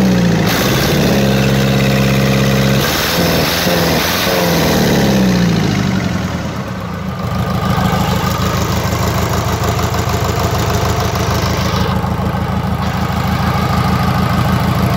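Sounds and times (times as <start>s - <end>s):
diesel engine idling: 0.0s - 2.8s, 4.5s - 14.9s.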